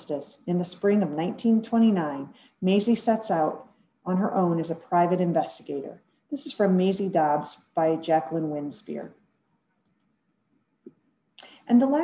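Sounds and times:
faint small clicks: 9.8 - 10.2.

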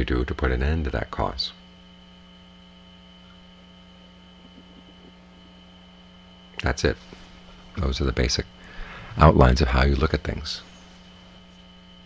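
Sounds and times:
electrical mains hum: 0.0 - 12.0
thin high whine: 1.8 - 12.0.

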